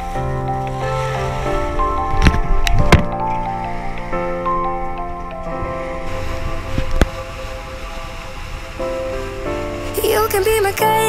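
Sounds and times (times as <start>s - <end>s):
wind and rushing water: 0.0s - 11.0s.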